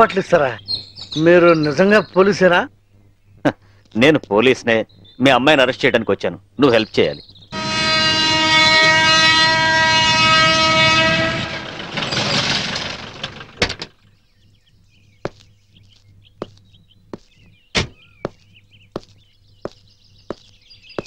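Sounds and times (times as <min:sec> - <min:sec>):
train horn blast: 0:07.6 - 0:13.4
footsteps: 0:15.2 - 0:21.0.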